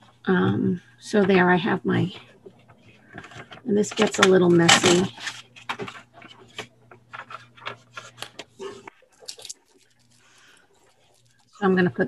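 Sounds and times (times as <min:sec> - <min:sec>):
paper sheets rustling and shuffling: 0:01.1 - 0:11.6.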